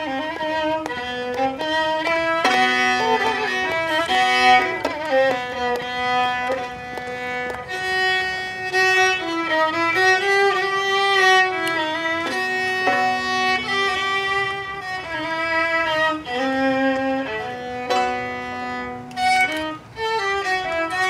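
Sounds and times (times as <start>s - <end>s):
solo violin: 0.0s - 21.0s.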